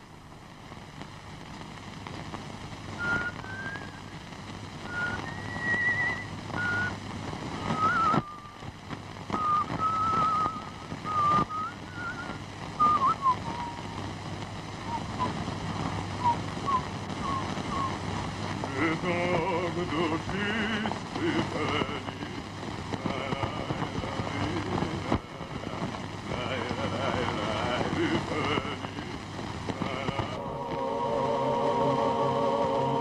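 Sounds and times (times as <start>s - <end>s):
voice: 18.7s - 22.4s, 23.0s - 29.2s, 29.8s - 33.0s.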